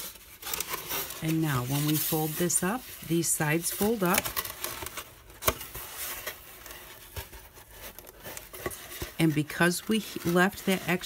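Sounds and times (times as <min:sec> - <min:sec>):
foam board rustling: 0:00.0 - 0:11.0.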